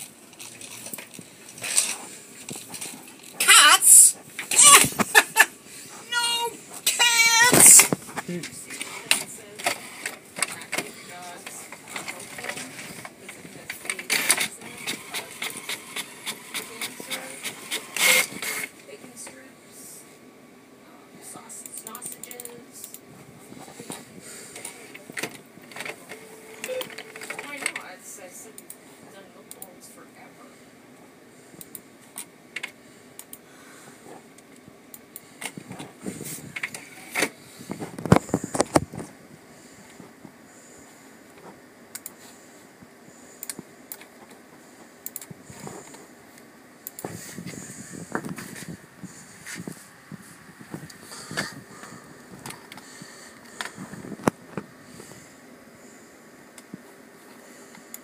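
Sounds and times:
inkjet printer whirring and clicking: 0:09.1 - 0:18.7.

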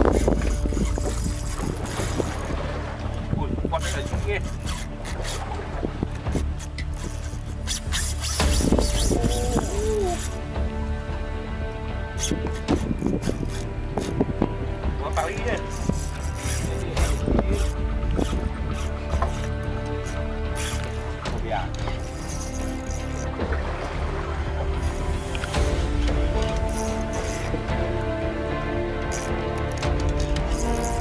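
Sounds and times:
wind on microphone: 0:00.0 - 0:04.2, 0:05.4 - 0:11.1, 0:12.2 - 0:15.0, 0:15.8 - 0:19.2
boat engine rumble: 0:00.0 - 0:31.0
fishing reel clicking: 0:00.1 - 0:02.4, 0:04.1 - 0:05.4, 0:06.5 - 0:10.4, 0:12.2 - 0:14.1, 0:15.6 - 0:21.0, 0:21.9 - 0:23.3, 0:26.4 - 0:27.5, 0:29.0 - 0:31.0
low rumble: 0:07.4 - 0:22.0.

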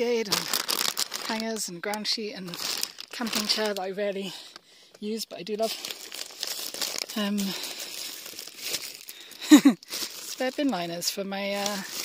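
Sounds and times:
gear rustling in a box: 0:02.6 - 0:03.8, 0:05.6 - 0:12.0.

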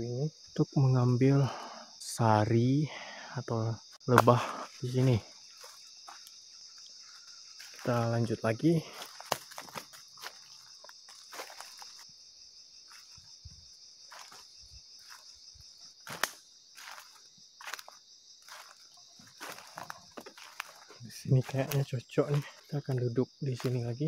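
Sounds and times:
high-pitched insect drone: 0:00.0 - 0:24.0
footsteps in undergrowth: 0:03.9 - 0:24.0.

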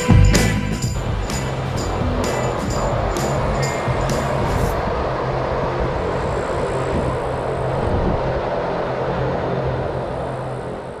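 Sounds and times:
electric train humming: 0:00.0 - 0:11.0.

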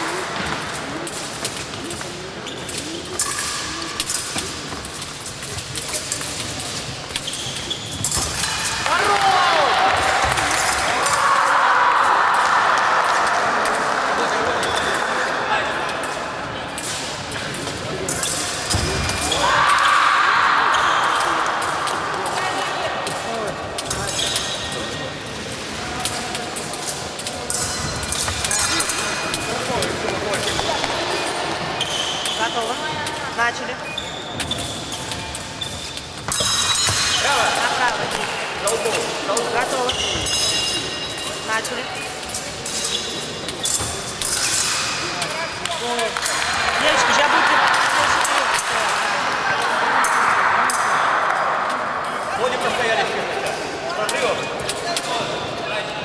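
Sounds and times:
shoes stamping and squeaking: 0:06.6 - 0:08.7, 0:30.0 - 0:32.5.

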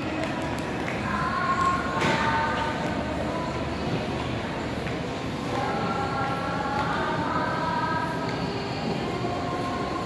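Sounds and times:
rumbling hum of mall hall: 0:00.0 - 0:10.0.

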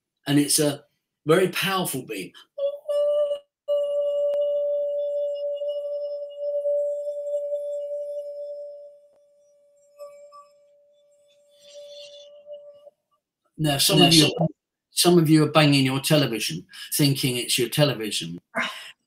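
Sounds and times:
man singing steady pure tone: 0:13.7 - 0:14.4.

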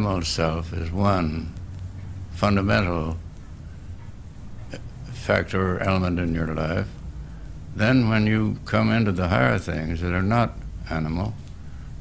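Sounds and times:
man talking: 0:00.0 - 0:01.6, 0:02.4 - 0:03.2, 0:04.7 - 0:07.0, 0:07.8 - 0:11.4
recording hum and hiss: 0:00.0 - 0:12.0.

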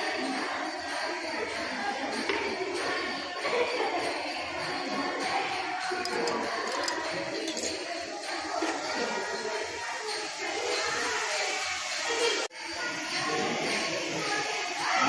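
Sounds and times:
group singing devotional songs: 0:00.0 - 0:15.0
jingling percussion: 0:00.0 - 0:15.0.

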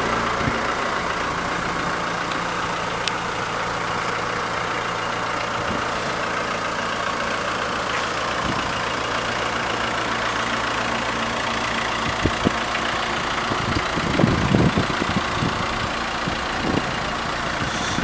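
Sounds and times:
diesel engine idling: 0:00.0 - 0:18.0.

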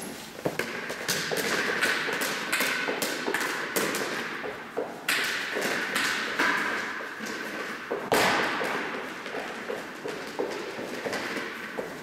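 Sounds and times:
footsteps echoing in hall: 0:00.0 - 0:12.0.

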